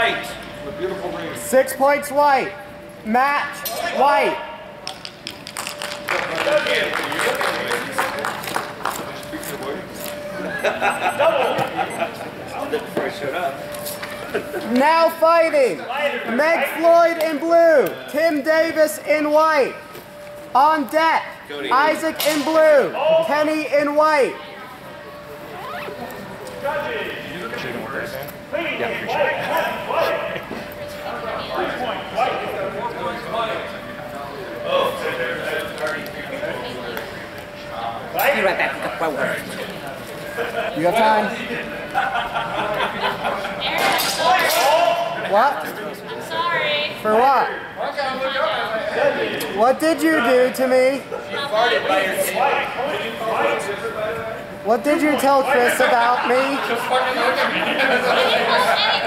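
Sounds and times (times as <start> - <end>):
indistinct voices in a hall: 0.0 - 59.0.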